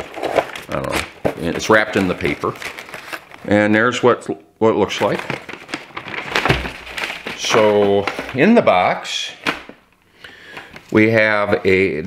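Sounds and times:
wrapping paper rustling and crackling: 0.0 - 3.7, 4.8 - 9.8.

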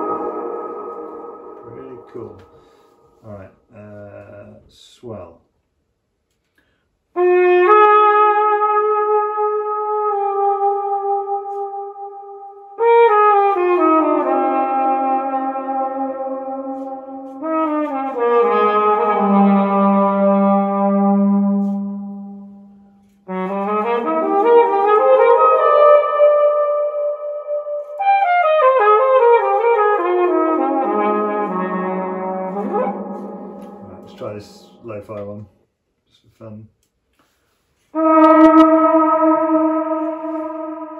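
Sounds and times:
trumpet with reverb: 0.0 - 3.6, 7.2 - 35.4, 37.8 - 40.9.

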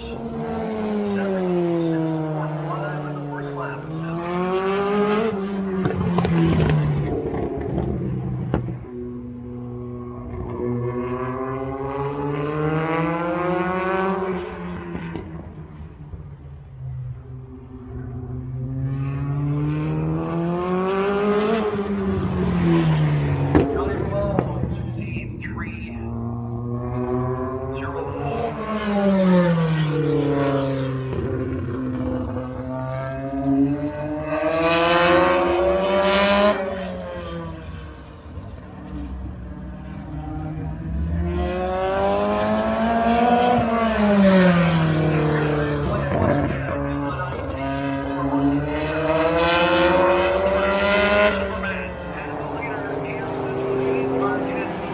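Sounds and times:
race car engine accelerating: 0.1 - 54.9.

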